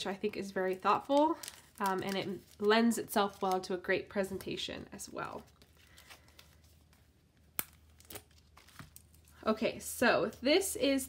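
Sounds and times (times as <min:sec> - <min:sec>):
paper crinkling: 0:00.2 - 0:09.5.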